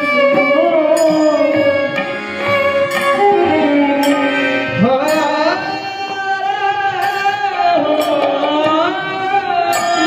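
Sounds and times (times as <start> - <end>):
violin melody: 0.0 - 7.7
hand cymbals striking: 0.0 - 10.0
harmonium: 0.0 - 10.0.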